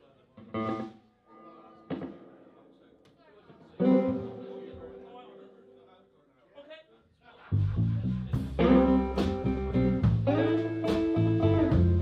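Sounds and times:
electric guitar plucked: 0:03.8 - 0:05.1, 0:08.5 - 0:12.0.

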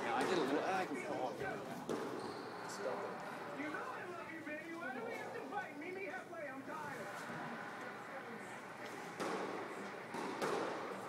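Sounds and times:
faint voices: 0:00.0 - 0:11.0
squash ball knock: 0:09.2 - 0:11.0.

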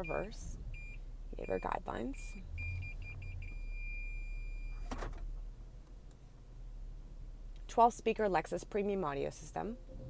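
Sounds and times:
parking sensor beeping: 0:00.0 - 0:05.1.

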